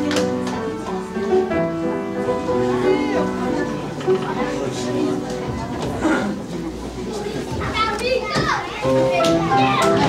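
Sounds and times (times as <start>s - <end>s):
music: 0.0s - 6.0s, 8.8s - 10.0s
young children calling and chattering: 0.0s - 10.0s.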